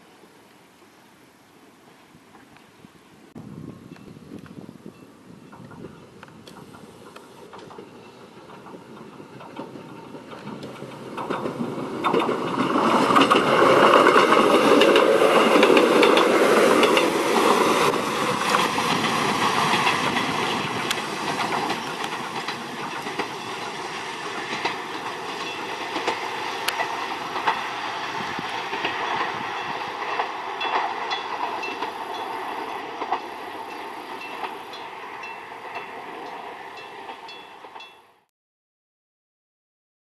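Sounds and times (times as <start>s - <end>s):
wheels clicking over rail joints: 4.0s - 38.3s
electric train running: 4.9s - 38.2s.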